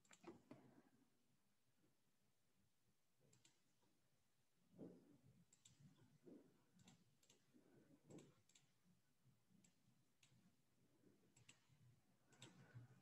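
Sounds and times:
mouse and keyboard clicks: 0.0 - 0.6.

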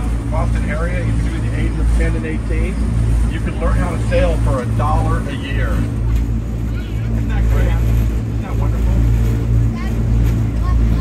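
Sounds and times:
boat engine low drone: 0.0 - 11.0.

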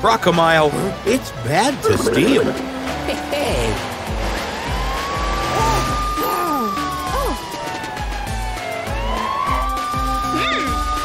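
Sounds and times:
upbeat cartoon music: 0.0 - 5.0
swooping sound effects: 1.8 - 3.1
police car siren: 4.4 - 11.0.

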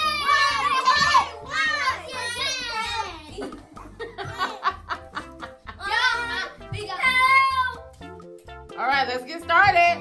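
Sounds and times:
background music: 0.0 - 10.0
children laughing: 1.8 - 7.1.

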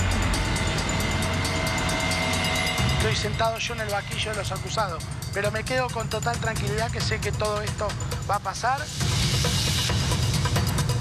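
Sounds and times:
loud droning rumble: 0.0 - 6.3.

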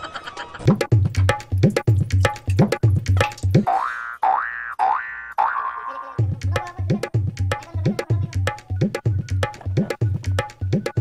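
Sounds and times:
tabla-style drum beat: 0.7 - 3.8, 6.2 - 11.0.

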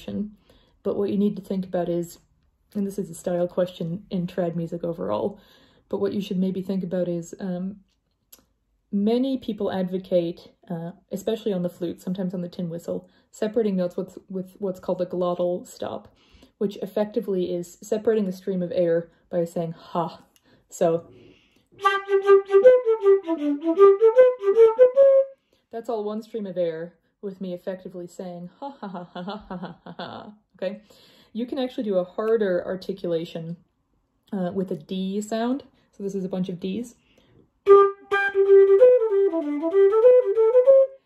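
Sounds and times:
flute playing quick notes: 21.8 - 25.3, 37.7 - 41.0.

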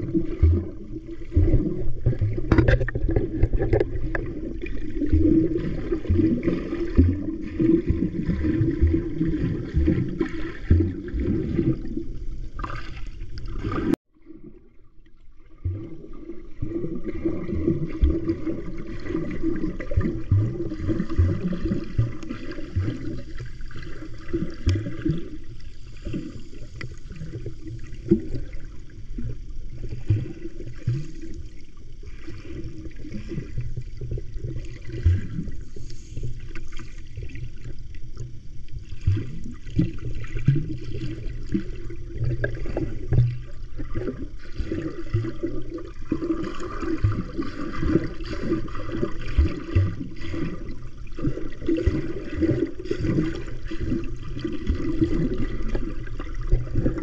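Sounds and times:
muffled underwater rumble: 0.0 - 57.0
small underwater knocks and clicks: 1.3 - 5.3, 20.0 - 25.2, 26.0 - 28.4, 33.2 - 44.2.

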